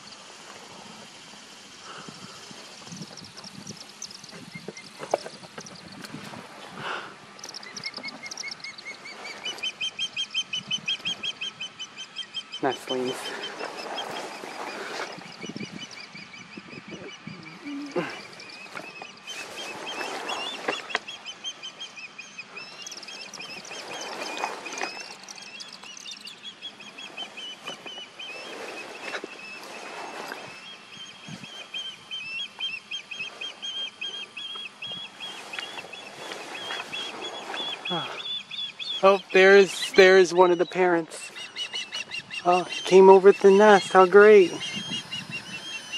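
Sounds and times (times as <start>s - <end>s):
ospreys chirping: 0.0s - 45.9s
rustling: 17.7s - 21.1s, 22.8s - 26.0s, 26.8s - 31.8s, 35.1s - 38.4s.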